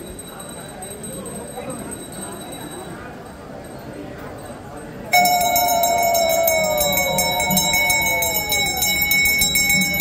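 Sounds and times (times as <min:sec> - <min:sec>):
temple bells ringing fast: 0:05.1 - 0:10.0.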